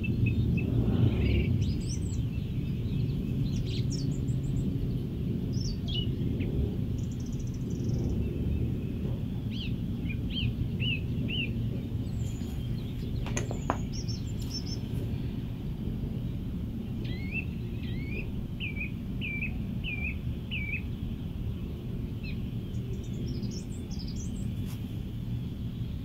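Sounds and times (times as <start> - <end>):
low background rumble: 0.0 - 26.0.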